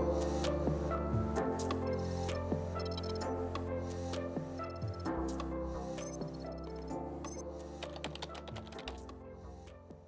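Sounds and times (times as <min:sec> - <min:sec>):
keyboard typing clicks: 0:07.3 - 0:09.1.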